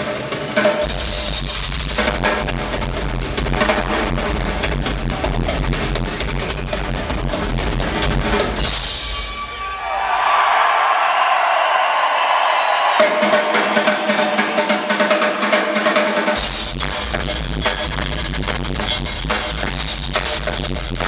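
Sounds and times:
drum kit solo: 0:00.0 - 0:10.0, 0:12.5 - 0:21.0
crowd cheering: 0:09.1 - 0:16.4.

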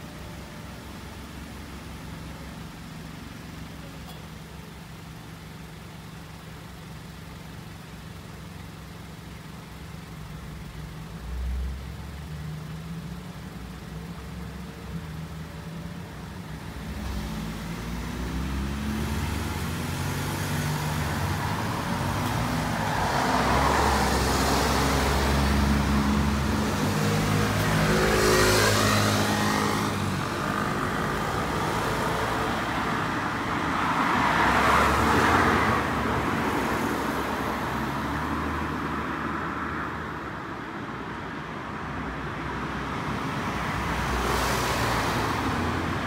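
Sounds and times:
car engine idling: 0:00.0 - 0:17.0
cars passing on street: 0:00.0 - 0:46.0.

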